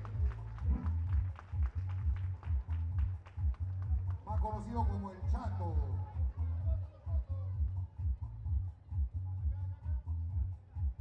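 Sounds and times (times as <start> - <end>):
upbeat music with heavy bass: 0.0 - 11.0.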